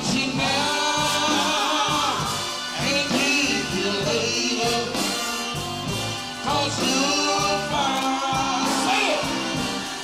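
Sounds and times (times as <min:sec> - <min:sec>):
vocal group singing in harmony: 0:00.0 - 0:10.0.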